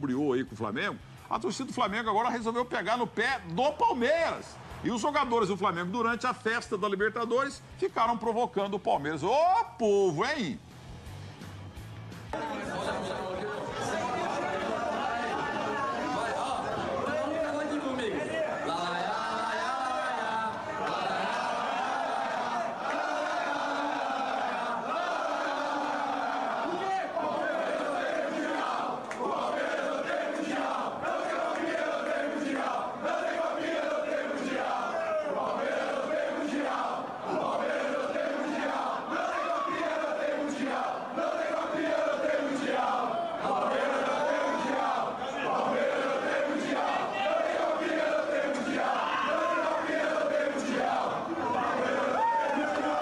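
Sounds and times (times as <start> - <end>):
crowd noise: 11.4 - 53.0
men shouting and singing: 12.4 - 53.0
men chanting together: 13.7 - 53.0.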